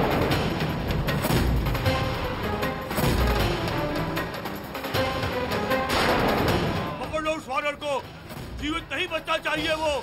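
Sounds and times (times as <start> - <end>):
sharp percussive hits: 0.0 - 6.9
dramatic background music: 0.0 - 10.0.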